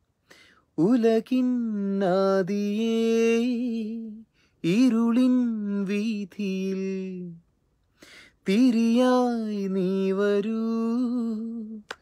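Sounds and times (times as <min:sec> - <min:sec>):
man singing unaccompanied: 0:00.8 - 0:07.4, 0:08.4 - 0:12.0.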